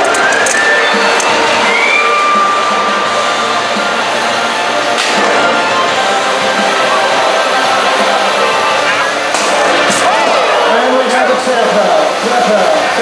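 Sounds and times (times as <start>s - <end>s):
robot drive motors whining: 0.0s - 4.7s
steady loud din: 0.0s - 13.0s.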